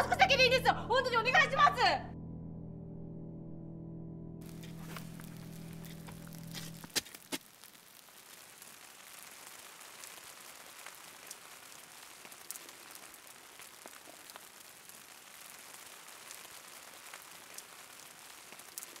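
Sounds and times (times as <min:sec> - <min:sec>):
light patter of rain: 0:04.4 - 0:19.0.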